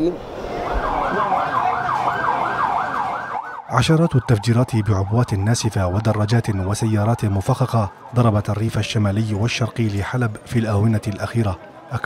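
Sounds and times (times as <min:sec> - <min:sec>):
siren yelping: 0:00.3 - 0:10.2.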